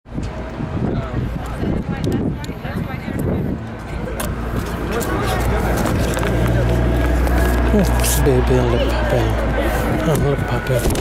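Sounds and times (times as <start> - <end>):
wind rumbling on microphone: 0.1 - 11.0.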